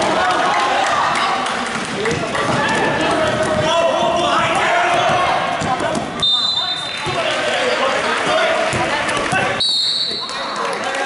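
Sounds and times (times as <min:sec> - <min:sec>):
voices echoing in gymnasium: 0:00.0 - 0:11.0.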